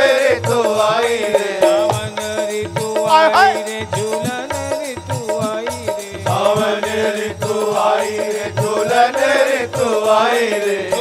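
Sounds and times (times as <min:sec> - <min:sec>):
man singing: 0:00.0 - 0:11.0
drum strokes: 0:00.5 - 0:05.6.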